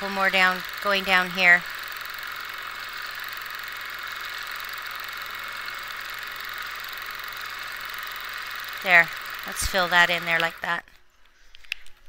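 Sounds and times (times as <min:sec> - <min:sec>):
quilting machine stitching: 0:00.0 - 0:10.8.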